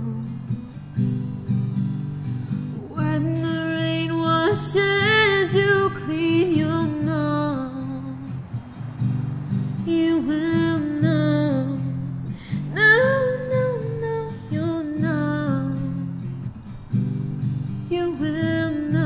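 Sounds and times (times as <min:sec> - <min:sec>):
woman singing: 0:00.0 - 0:00.8, 0:02.8 - 0:08.4, 0:09.8 - 0:16.5, 0:17.8 - 0:19.0
acoustic guitar accompaniment: 0:00.0 - 0:19.0.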